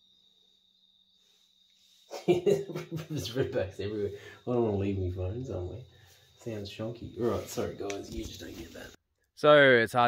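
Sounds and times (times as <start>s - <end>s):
cricket trilling: 0.0s - 9.0s.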